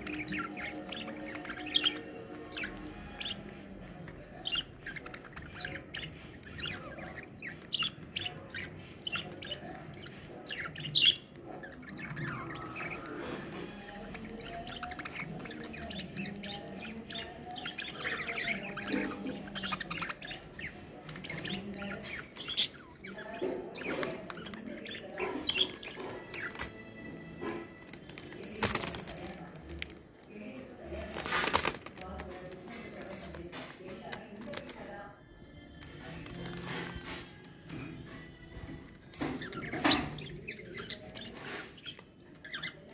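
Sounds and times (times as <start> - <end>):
budgerigars chirping: 0.0 - 35.0, 35.8 - 42.9.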